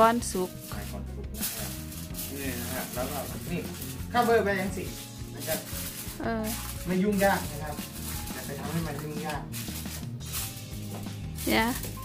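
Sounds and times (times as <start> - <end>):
aluminium foil crinkling: 0.0 - 12.0
background music: 0.0 - 12.0
person speaking: 11.4 - 11.9.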